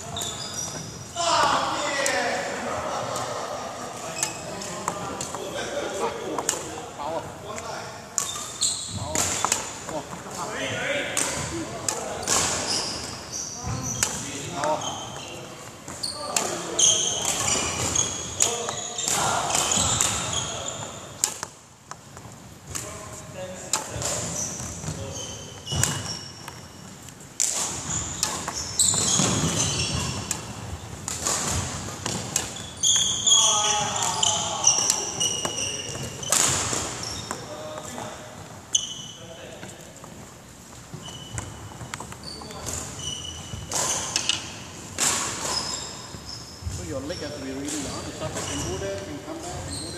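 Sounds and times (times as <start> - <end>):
court shoes squeaking: 0.0 - 49.9.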